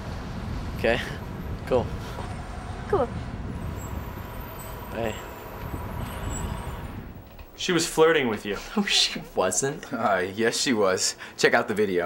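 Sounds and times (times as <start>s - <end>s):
low background rumble: 0.0s - 9.9s.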